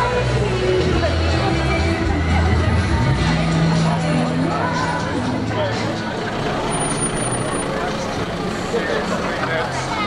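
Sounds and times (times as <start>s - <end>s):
people talking close by: 0.0s - 10.0s
vehicles crawling past slowly: 0.0s - 10.0s.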